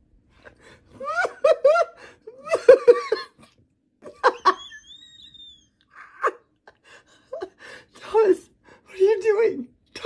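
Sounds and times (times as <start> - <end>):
person laughing: 1.0 - 7.6.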